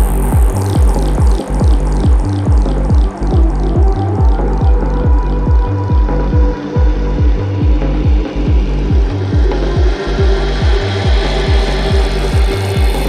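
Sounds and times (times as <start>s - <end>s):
psytrance kick drum: 0.0s - 13.0s
rolling bassline: 0.0s - 13.0s.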